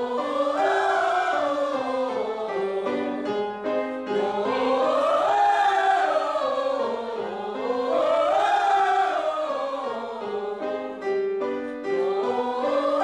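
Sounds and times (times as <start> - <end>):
group singing vocal warm-up: 0.0 - 13.0
piano chords: 0.0 - 13.0.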